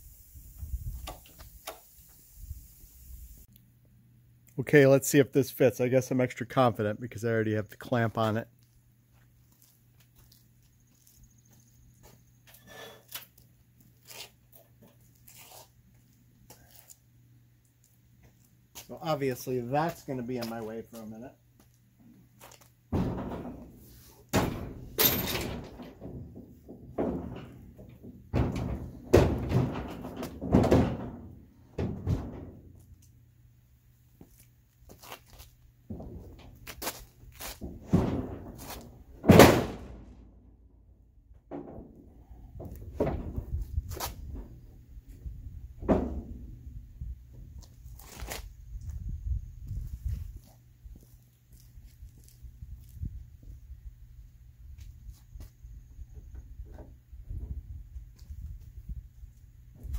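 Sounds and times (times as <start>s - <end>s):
wooden boards knocking on metal: 23.0s - 23.7s, 24.3s - 32.7s.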